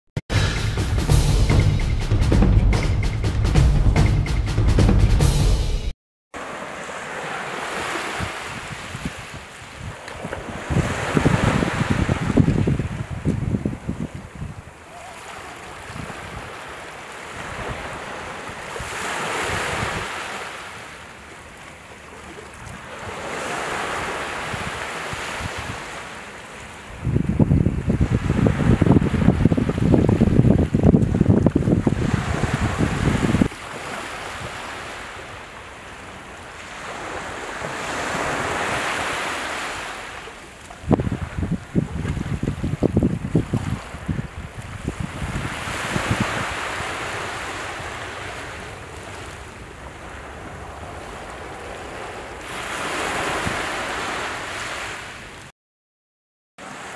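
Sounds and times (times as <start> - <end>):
sea waves washing onto shore: 6.4 - 55.5
wind buffeting microphone: 8.2 - 14.8, 26.9 - 33.5, 40.8 - 47.3.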